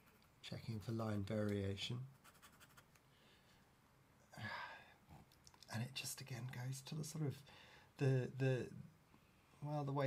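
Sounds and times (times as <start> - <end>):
pen nib scratching on paper: 2.2 - 2.9.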